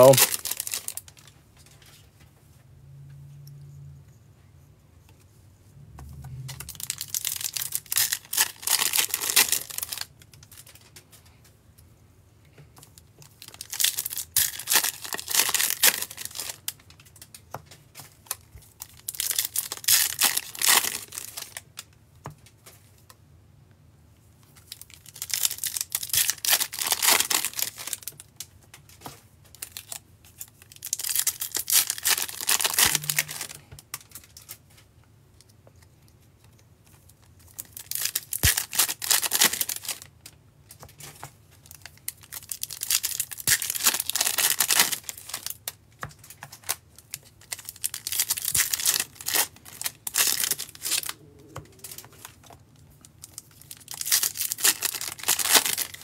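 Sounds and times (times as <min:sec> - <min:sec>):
foil card packs tearing and crinkling: 0:00.0 - 0:01.3, 0:06.4 - 0:11.0, 0:13.2 - 0:17.2, 0:18.0 - 0:21.8, 0:24.7 - 0:28.2, 0:29.0 - 0:34.6, 0:37.4 - 0:40.1, 0:40.8 - 0:56.0.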